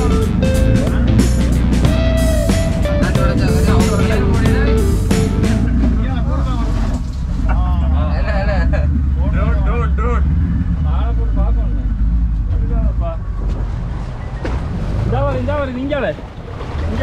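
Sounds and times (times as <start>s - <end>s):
people's voices: 0.0s - 13.8s
boat engine rumbling: 0.0s - 17.0s.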